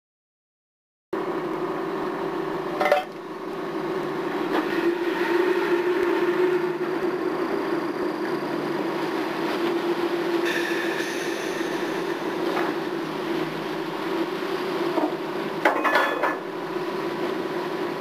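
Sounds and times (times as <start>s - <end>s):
boat engine drone: 1.6s - 15.4s.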